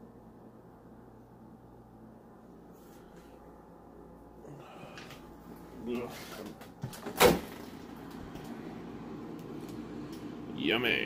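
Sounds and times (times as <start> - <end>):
refrigerator door seal thump: 6.8 - 7.9.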